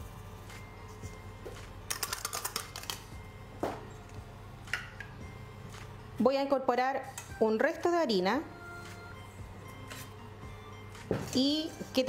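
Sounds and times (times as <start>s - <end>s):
yeast granules clicking into bowl: 1.9s - 3.0s.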